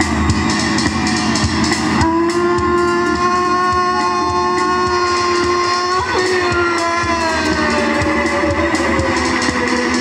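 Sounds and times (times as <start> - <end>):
voice and keyboard music: 2.0 - 10.0.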